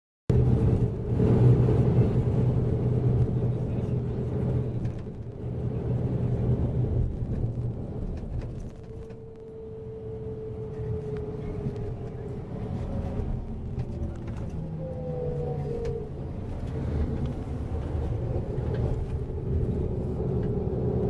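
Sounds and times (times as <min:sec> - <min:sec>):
bus engine and road noise: 0:00.3 - 0:21.0.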